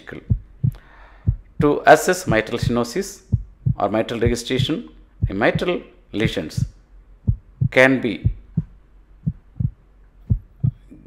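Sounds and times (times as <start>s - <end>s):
heartbeat thumps: 0.1s - 11.0s.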